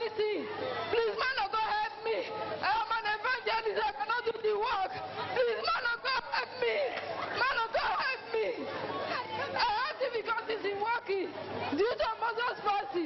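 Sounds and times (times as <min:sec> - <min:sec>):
voices speaking and calling out: 0:00.0 - 0:13.0.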